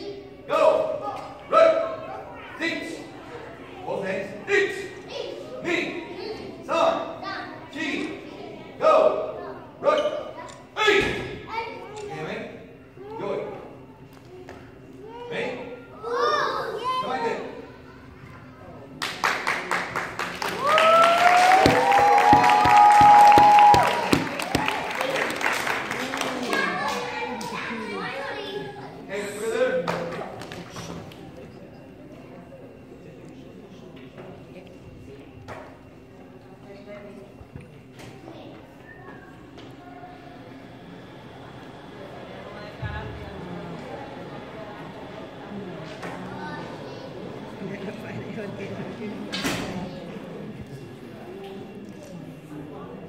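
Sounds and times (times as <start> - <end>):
murmur of voices: 0.0 - 53.0
audience applauding: 19.0 - 27.5
person cheering: 20.6 - 24.7.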